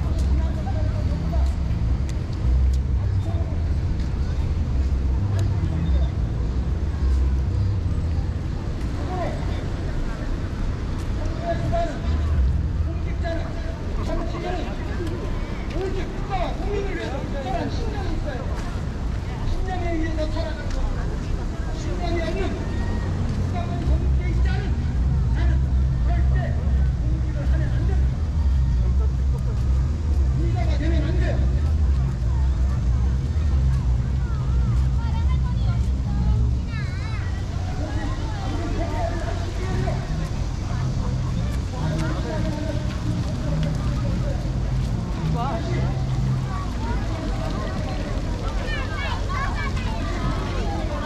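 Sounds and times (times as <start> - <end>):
passers-by talking: 0.0 - 51.0
steady low city rumble: 0.0 - 51.0.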